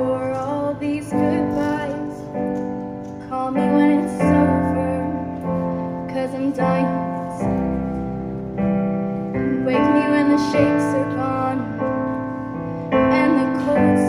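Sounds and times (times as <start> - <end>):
woman singing softly: 0.0 - 2.4, 3.2 - 5.5, 9.5 - 11.8, 13.1 - 14.0
piano sustained chords: 0.0 - 14.0.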